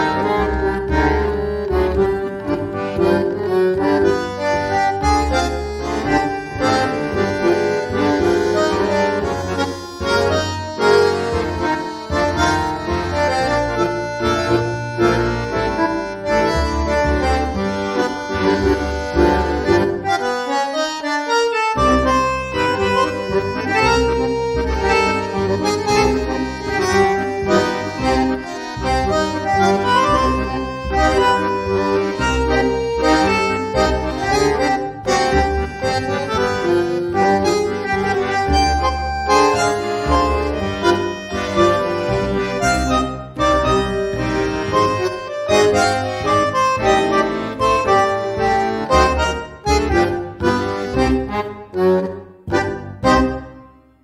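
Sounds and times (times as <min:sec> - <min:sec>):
bandoneon melody: 0:00.0 - 0:54.0
rhythmic bass accompaniment: 0:00.0 - 0:54.0.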